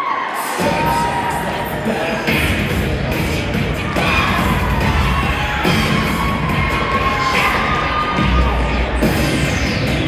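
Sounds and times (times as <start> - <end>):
crowd cheering and shouting: 0.0 - 10.0
music playing: 0.0 - 10.0.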